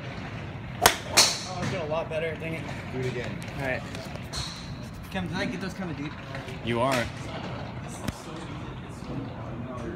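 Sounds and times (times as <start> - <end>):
steady background noise: 0.0 - 9.9
golf club striking ball: 0.8 - 1.6.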